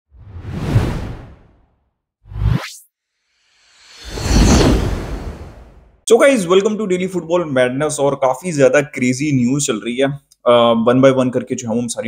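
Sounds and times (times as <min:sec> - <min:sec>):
whoosh sound effects: 0:02.3 - 0:06.0.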